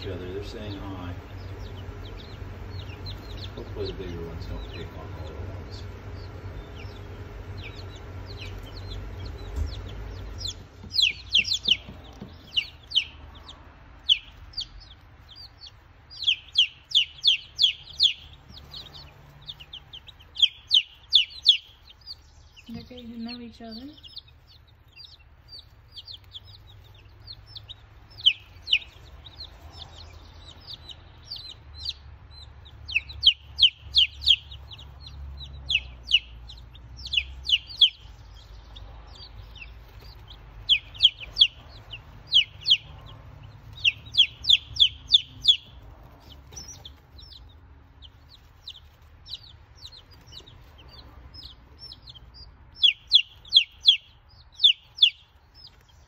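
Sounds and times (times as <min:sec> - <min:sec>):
baby chicks peeping: 0:00.0 - 0:56.0
faint low hum: 0:00.0 - 0:56.0.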